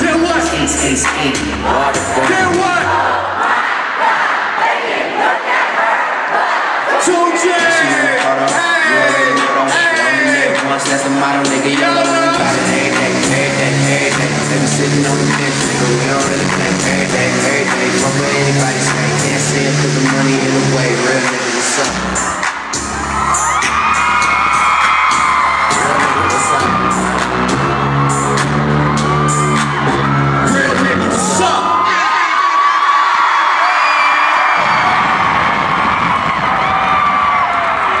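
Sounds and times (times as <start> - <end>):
hip-hop beat: 0.0 - 2.9, 7.0 - 31.4
crowd screaming and whooping: 6.0 - 38.0.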